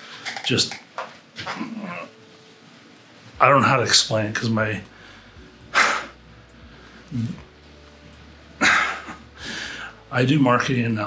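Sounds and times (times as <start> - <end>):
man's wordless voiced sound: 7.1 - 7.4.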